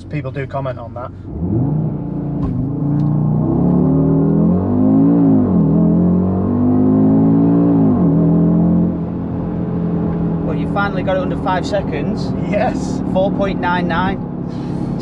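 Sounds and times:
car engine at full throttle: 0:00.0 - 0:15.0.

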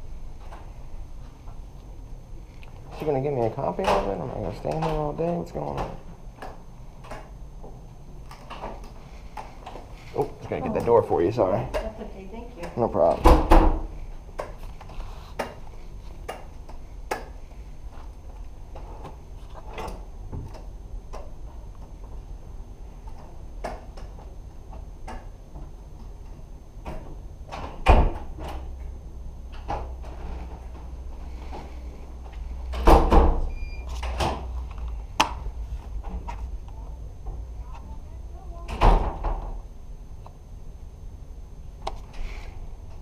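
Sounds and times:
steady low hum: 0:00.0 - 0:43.0
door banging shut: 0:13.2 - 0:13.9, 0:32.8 - 0:33.5.

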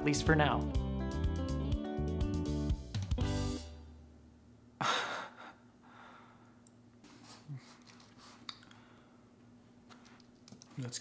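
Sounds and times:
man's breathy laugh: 0:04.8 - 0:06.2.

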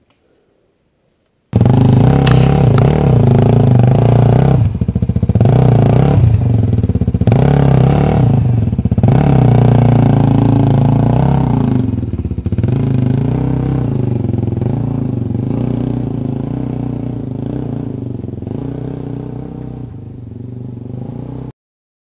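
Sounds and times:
dirt bike engine revving: 0:01.6 - 0:21.5.

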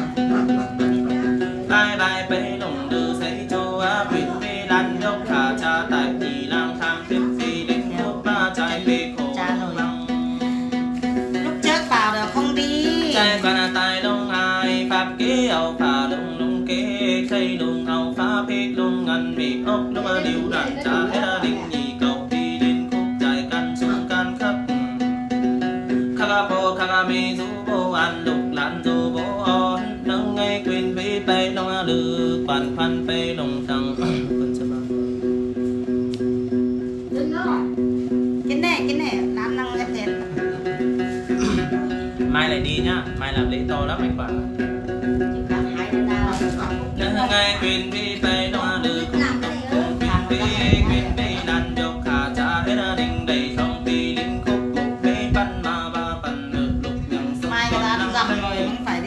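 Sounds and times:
long-necked lute plucked: 0:00.0 - 0:59.0
person singing: 0:00.0 - 0:59.0.

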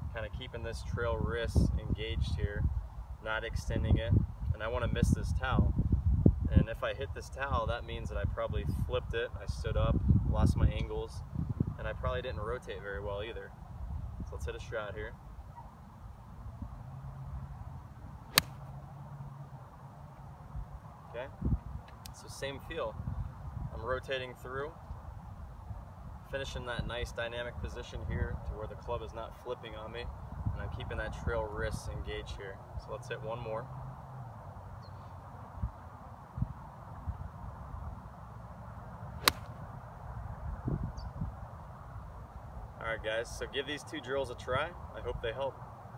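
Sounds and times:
golf club striking ball: 0:18.3 - 0:18.7, 0:39.2 - 0:39.6.

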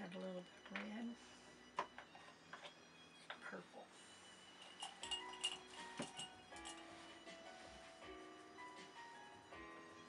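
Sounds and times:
brushes clinking on glass jar: 0:04.6 - 0:06.9.

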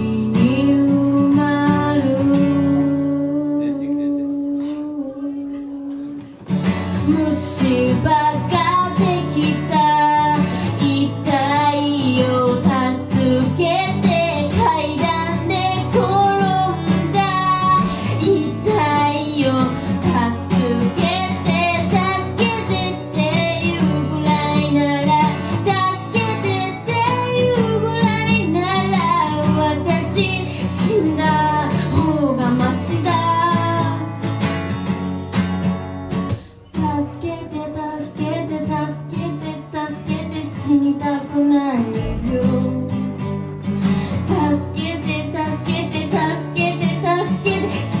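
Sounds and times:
person singing: 0:00.0 - 0:06.4, 0:41.8 - 0:43.3
strummed acoustic guitar: 0:00.0 - 0:48.0.

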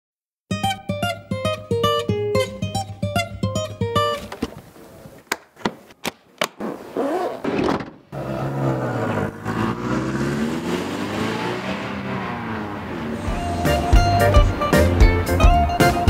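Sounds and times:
music: 0:00.5 - 0:04.3, 0:13.2 - 0:16.0
case latches clicking open: 0:05.2 - 0:06.7
minibus engine running: 0:07.9 - 0:16.0.

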